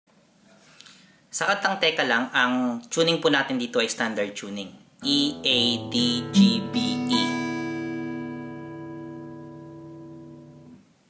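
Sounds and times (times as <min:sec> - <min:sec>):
acoustic guitar strings ringing: 0:05.0 - 0:10.8
guitar string plucked: 0:05.0 - 0:10.8.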